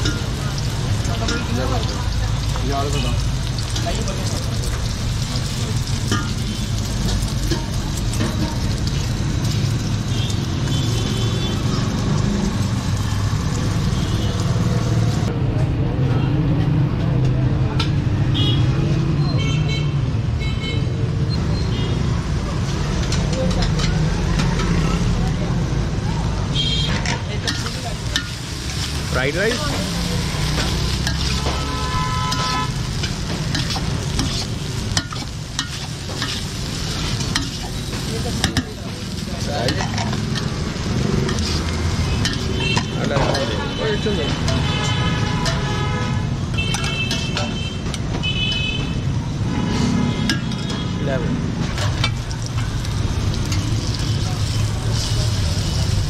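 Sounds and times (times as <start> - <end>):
street rumble: 0.0 - 56.0.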